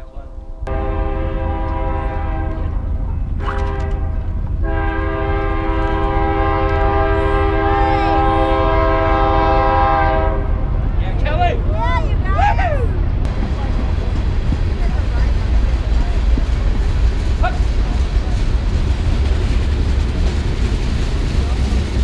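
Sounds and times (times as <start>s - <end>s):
train air horn blasts: 0.4s - 10.7s
low rumble: 8.4s - 22.0s.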